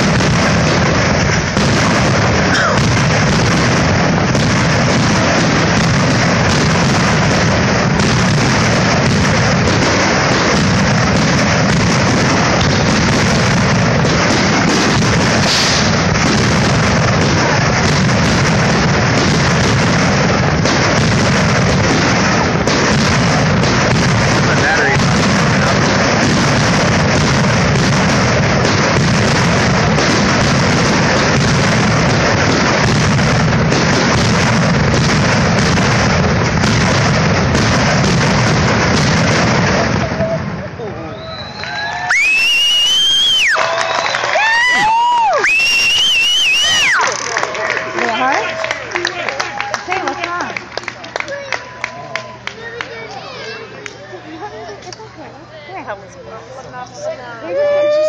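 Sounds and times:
fireworks bursting and crackling: 0:00.0 - 0:58.0
spectators cheering and whooping: 0:41.1 - 0:50.5, 0:51.1 - 0:52.7, 0:57.4 - 0:58.0.

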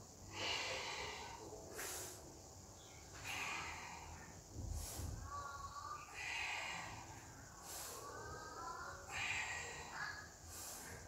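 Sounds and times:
person breathing: 0:00.0 - 0:11.0.

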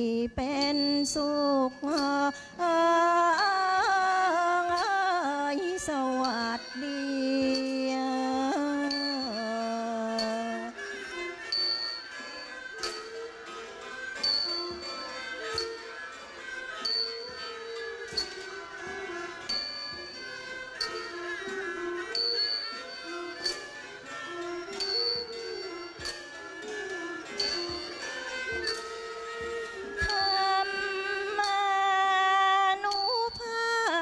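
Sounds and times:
bowed fiddles melody: 0:04.0 - 0:32.6
hand cymbals struck: 0:04.6 - 0:31.8, 0:32.8 - 0:33.6.

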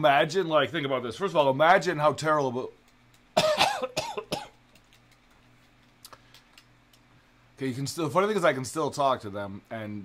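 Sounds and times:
person coughing: 0:03.4 - 0:04.6.

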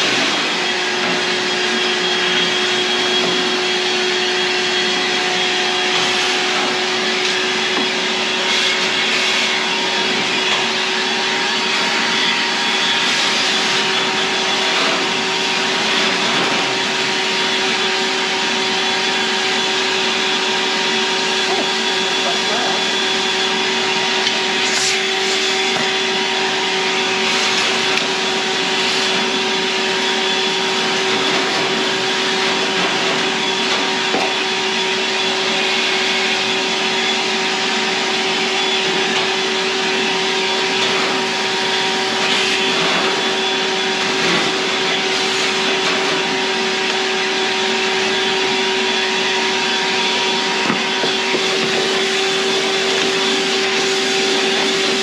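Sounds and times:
vacuum cleaner running: 0:00.0 - 0:55.0.

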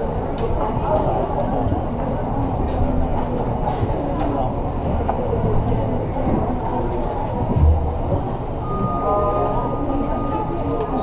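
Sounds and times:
indistinct voices: 0:05.0 - 0:11.0
low rumble: 0:07.4 - 0:08.6.

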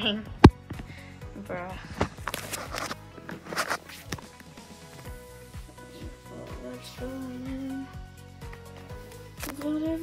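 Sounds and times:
background music with held notes: 0:00.0 - 0:10.0
footsteps: 0:01.8 - 0:05.8.

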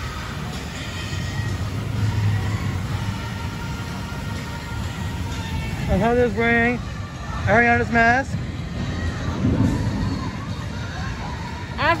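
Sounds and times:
faint music: 0:00.0 - 0:12.0
steady low rumble: 0:00.0 - 0:12.0.

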